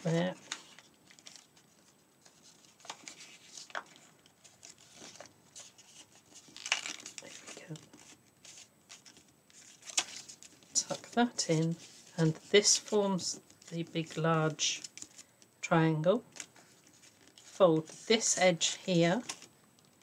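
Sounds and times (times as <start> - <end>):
stiff paper crinkling: 0.0 - 15.5, 16.3 - 18.2.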